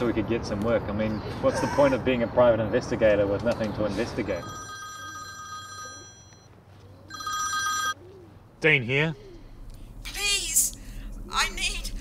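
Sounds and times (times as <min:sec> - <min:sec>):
mobile phone ringing: 0:04.4 - 0:08.0.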